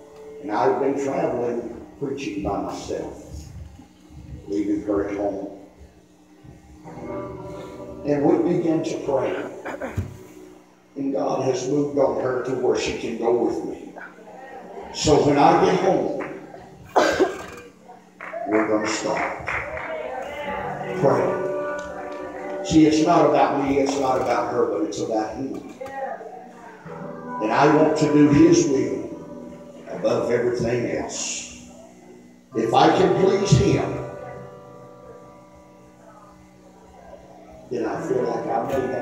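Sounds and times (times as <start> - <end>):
soft background music: 0.0 - 39.0
man's amplified voice echoing: 0.4 - 3.4, 8.0 - 9.7, 11.0 - 14.0, 15.0 - 16.2, 20.8 - 21.5, 22.6 - 25.8, 27.3 - 29.2, 29.9 - 31.6, 32.5 - 34.0, 37.7 - 39.0.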